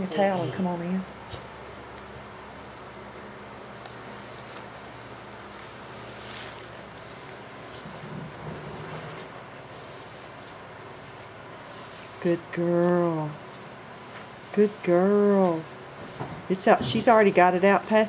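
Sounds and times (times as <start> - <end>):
steady background hiss: 0.0 - 18.0
faint rustle: 1.0 - 12.3.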